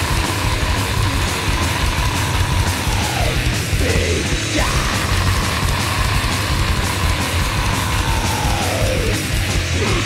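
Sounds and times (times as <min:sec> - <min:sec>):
distorted extreme metal: 0:00.0 - 0:10.0.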